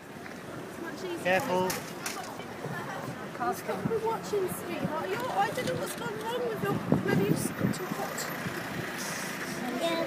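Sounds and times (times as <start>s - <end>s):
motor vehicle running: 0.0s - 10.0s.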